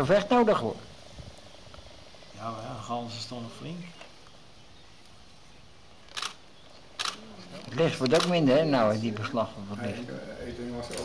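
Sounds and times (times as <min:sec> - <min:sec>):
faint background hiss: 0:00.0 - 0:11.0
man talking: 0:02.4 - 0:04.0, 0:07.2 - 0:11.0
short sharp clicks: 0:06.1 - 0:06.4, 0:07.0 - 0:07.2.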